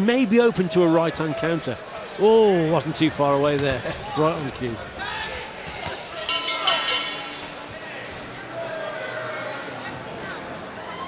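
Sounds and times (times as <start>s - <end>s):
murmur of hall crowd: 0.0s - 11.0s
crowd shouting: 4.8s - 11.0s.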